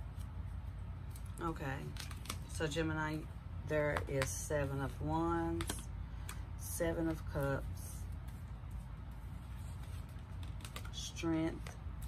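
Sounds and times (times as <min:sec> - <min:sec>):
steady low hum: 0:00.0 - 0:12.0
cards clicking: 0:09.8 - 0:11.7.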